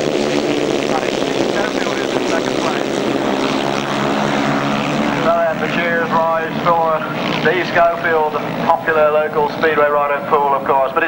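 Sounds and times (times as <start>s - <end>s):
motorcycles racing flat out: 0.0s - 11.0s.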